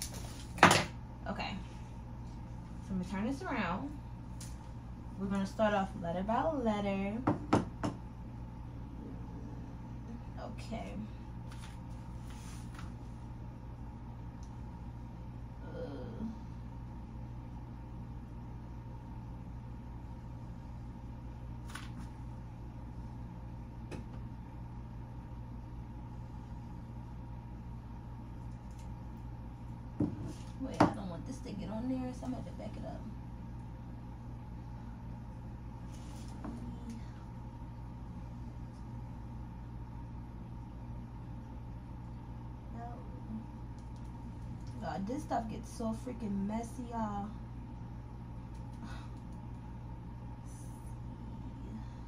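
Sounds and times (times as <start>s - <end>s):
low kitchen hum: 0.0s - 52.0s.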